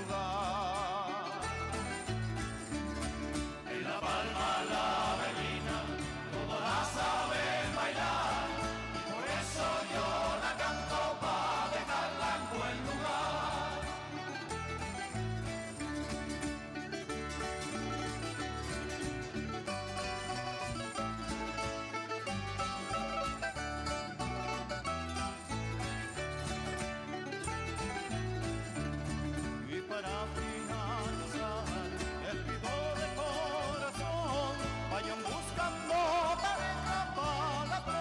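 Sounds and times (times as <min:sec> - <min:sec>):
folk string ensemble playing: 0:00.0 - 0:38.0
people singing: 0:03.6 - 0:14.5, 0:29.9 - 0:38.0.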